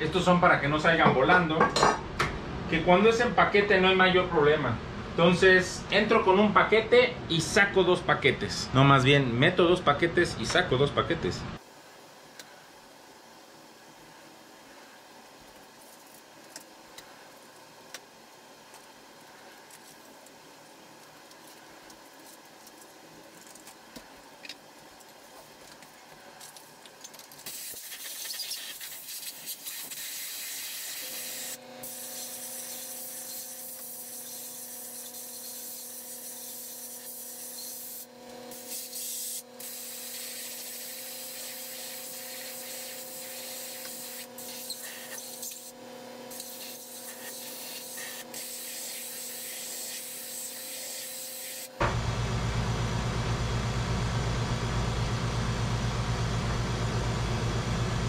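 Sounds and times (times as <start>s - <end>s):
loud steady machine noise: 51.1s - 58.0s.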